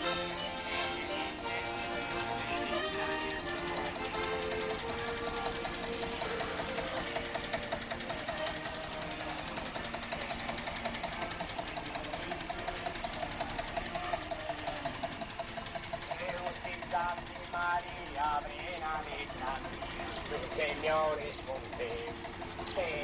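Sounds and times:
accordion music: 0.0s - 23.0s
tractor engine knocking slowly: 0.0s - 23.0s.

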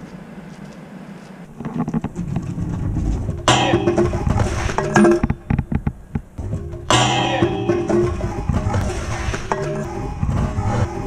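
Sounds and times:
scooter rolling on paving: 1.4s - 3.5s
music: 2.5s - 5.8s, 6.4s - 11.0s.

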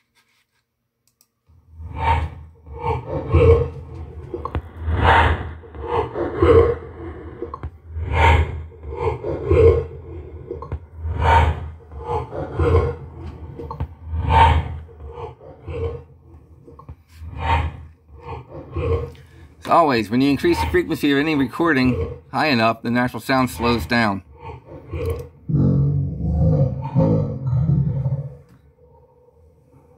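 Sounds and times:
steady low hum: 1.2s - 29.9s.

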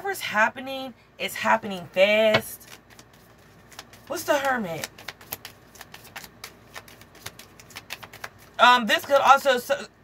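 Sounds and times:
cards being shuffled: 2.3s - 9.5s.

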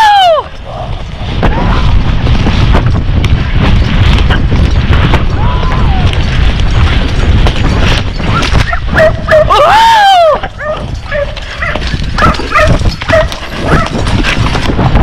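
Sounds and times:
wind rumble on microphone: 0.0s - 15.0s
horse hoofbeats: 0.6s - 9.5s, 10.4s - 15.0s.

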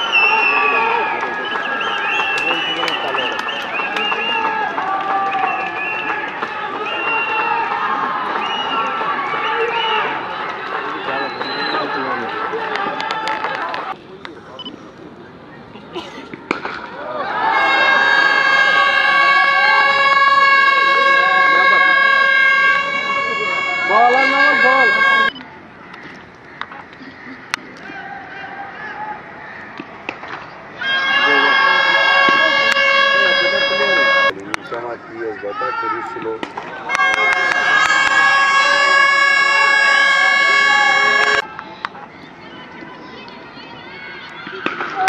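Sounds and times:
voices shouting: 0.0s - 14.0s, 16.4s - 45.0s
steady horn-like tone: 17.7s - 25.3s, 30.8s - 34.4s, 36.9s - 41.4s.

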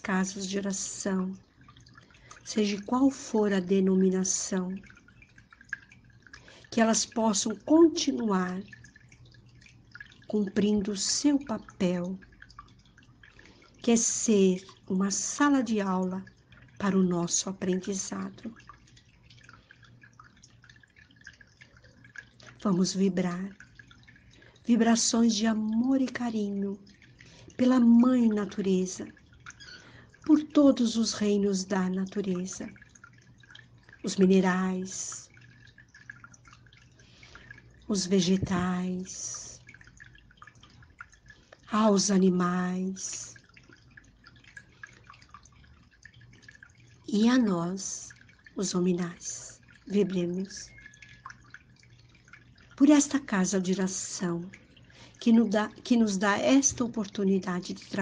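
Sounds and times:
low steady hum: 0.0s - 58.0s
faint small ticks: 29.2s - 30.2s, 50.6s - 52.8s.

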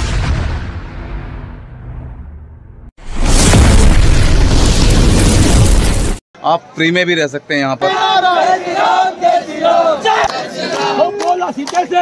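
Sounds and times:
explosion boom: 0.0s - 6.2s.

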